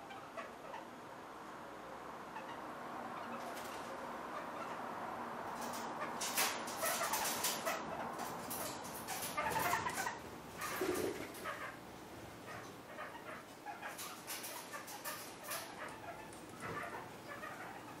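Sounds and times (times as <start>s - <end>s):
parakeets calling and clicking: 5.5s - 11.8s, 12.4s - 18.0s.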